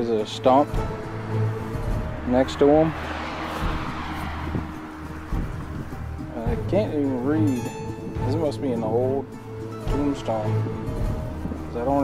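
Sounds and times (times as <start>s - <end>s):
wind rumbling on microphone: 0.6s - 12.0s
low thump: 0.8s - 6.9s.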